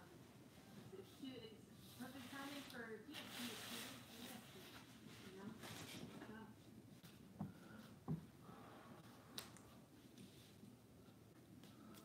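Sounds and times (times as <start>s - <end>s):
soft rustling hiss: 0.0s - 12.0s.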